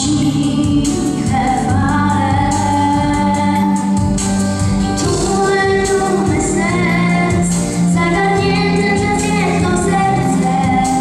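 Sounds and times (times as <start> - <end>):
boy singing into a microphone: 0.0 - 3.9, 5.0 - 11.0
amplified backing music: 0.0 - 11.0.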